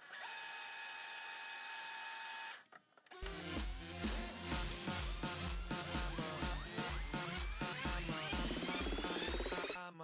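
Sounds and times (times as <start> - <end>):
electronic dance music: 3.3 - 10.0.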